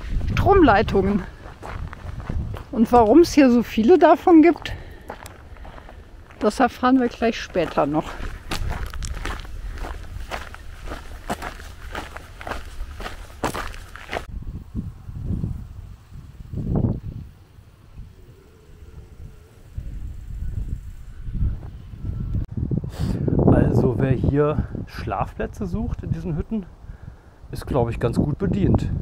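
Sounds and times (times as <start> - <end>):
footsteps on a path: 0.0 - 14.3.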